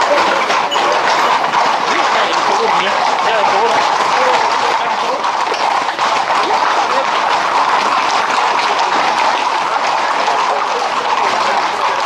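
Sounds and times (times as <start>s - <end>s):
hooves clattering on pavement: 0.0s - 12.0s.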